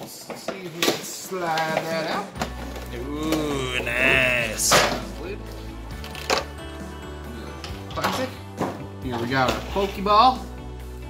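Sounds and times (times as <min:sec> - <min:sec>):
background music: 0:02.3 - 0:11.0.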